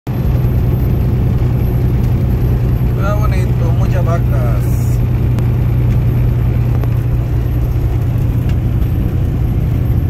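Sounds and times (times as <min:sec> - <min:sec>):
road noise: 0:00.1 - 0:10.0
truck engine drone: 0:00.1 - 0:10.0
man speaking: 0:03.0 - 0:05.0.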